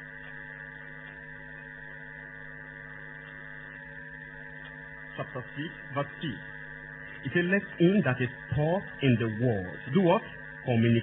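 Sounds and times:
electrical buzz: 0.0 - 11.0
electrical mains hum: 0.0 - 11.0.

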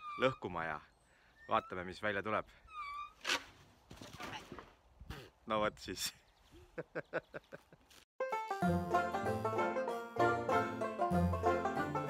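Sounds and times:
person laughing: 6.6 - 8.0.

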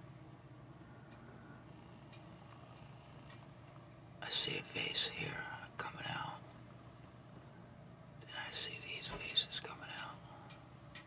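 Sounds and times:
person whispering: 4.2 - 6.4, 8.2 - 10.4.

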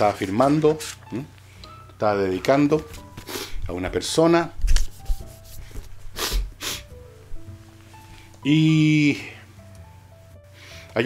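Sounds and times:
book scraping on books: 4.6 - 6.5.

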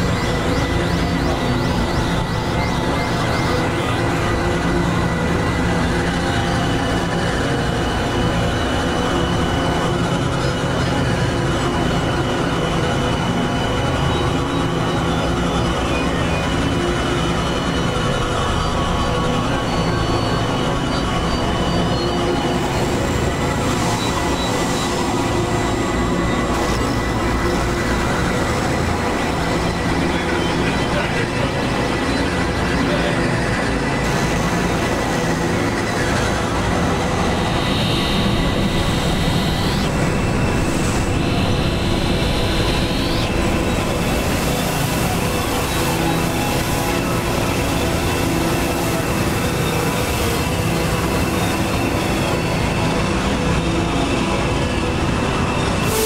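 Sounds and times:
high rising synth glides: 0.0 - 56.0
synthesized drones and rumbling noise: 0.0 - 56.0.

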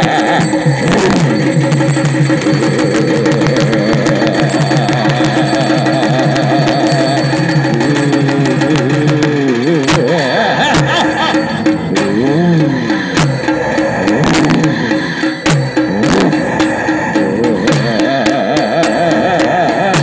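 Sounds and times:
fast dense drumming: 0.0 - 20.0
wavering pitch-bending melody: 0.0 - 20.0.

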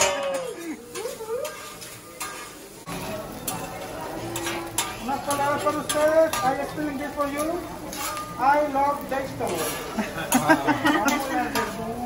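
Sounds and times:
metal spatulas scraping on griddle: 0.0 - 12.0.

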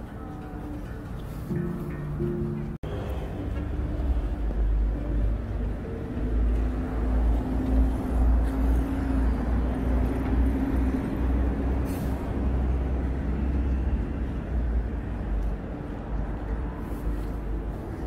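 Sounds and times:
engine hum: 0.0 - 18.0
vehicles passing on road: 0.0 - 18.0.

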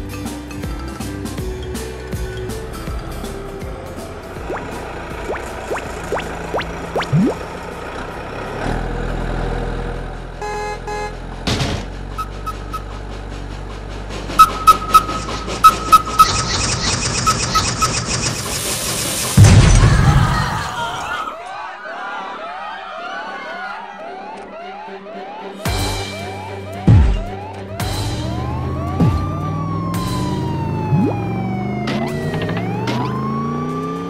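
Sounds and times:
cartoon background music: 0.0 - 7.5, 14.3 - 18.5, 23.5 - 34.0
low vehicle engine hum: 0.0 - 20.6, 25.9 - 34.0
short repeated beeps: 14.4 - 18.0.

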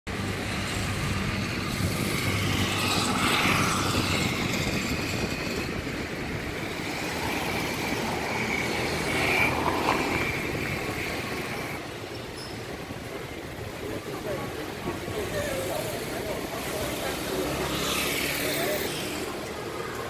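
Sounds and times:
traffic rumble: 0.1 - 20.0
vehicle whines: 0.1 - 20.0.

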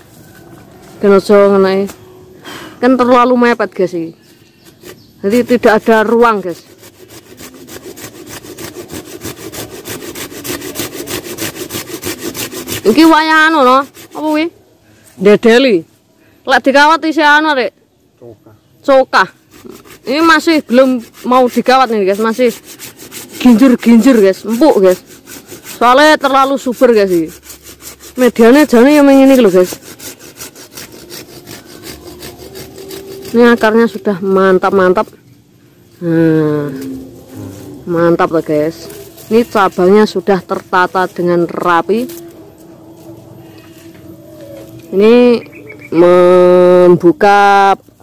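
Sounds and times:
hand saw cutting a branch: 4.6 - 15.6, 19.1 - 35.2, 36.8 - 42.4.

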